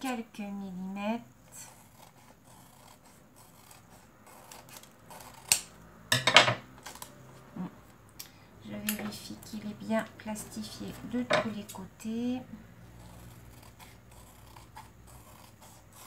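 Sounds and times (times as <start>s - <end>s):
scissors snipping plastic: 4.3s - 5.7s.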